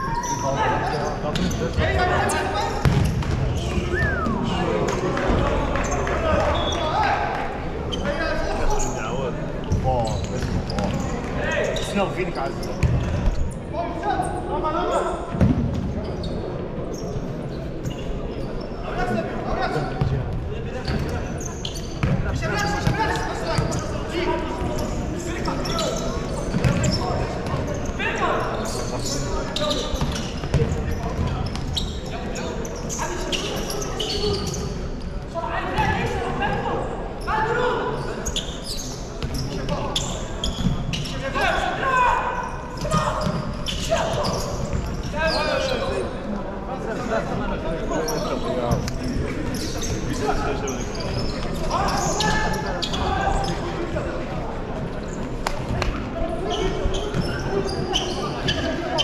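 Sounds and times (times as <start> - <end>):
spectators chattering: 0.0 - 59.0
ball kicked and bouncing: 2.8 - 3.4.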